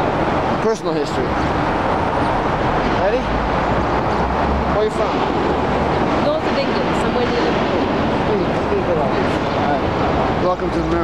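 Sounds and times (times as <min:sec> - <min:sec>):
city street traffic: 0:00.0 - 0:11.0.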